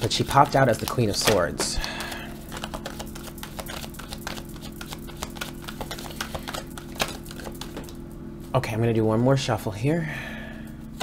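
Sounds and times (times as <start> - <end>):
cards being shuffled: 0.0 - 8.1.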